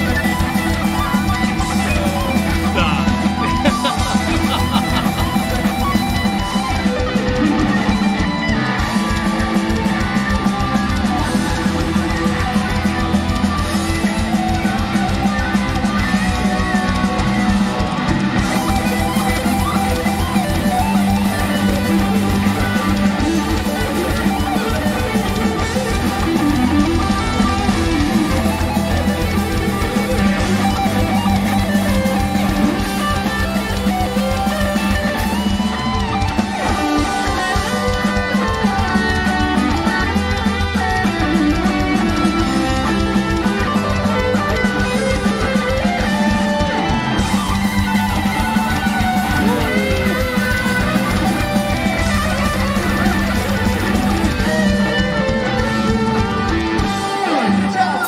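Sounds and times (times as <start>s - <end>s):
drums: 0.0s - 58.0s
electric guitar solo: 0.0s - 58.0s.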